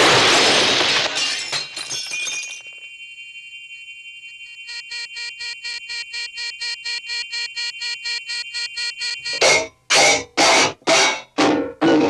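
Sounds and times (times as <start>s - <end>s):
glass and metal debris shattering: 0.0s - 2.8s
rapid pulsing beep: 4.5s - 9.7s.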